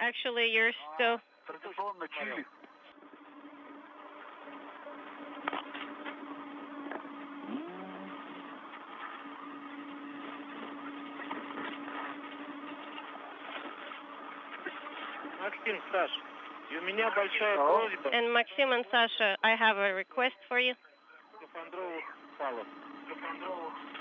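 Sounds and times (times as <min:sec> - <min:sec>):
low hum: 0:00.0 - 0:24.0
radio static hiss: 0:10.0 - 0:24.0.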